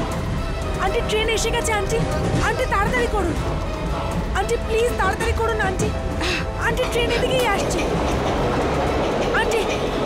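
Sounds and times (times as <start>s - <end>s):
train rumbling on tracks: 0.0s - 10.0s.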